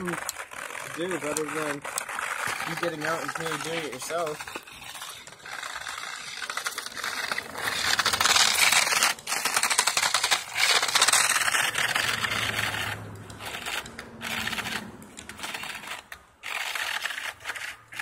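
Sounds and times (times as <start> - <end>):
toy car rattling over icy snow: 0.0 - 18.0.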